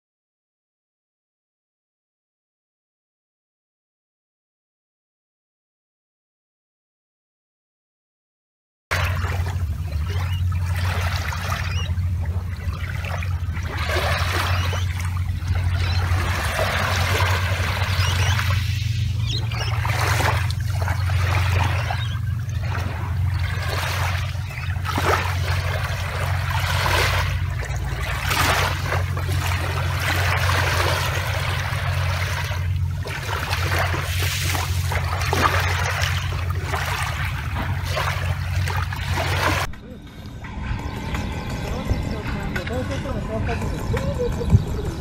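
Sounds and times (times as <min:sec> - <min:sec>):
small waves lapping on shore: 0:08.9 - 0:39.7
steady low rumble: 0:08.9 - 0:45.0.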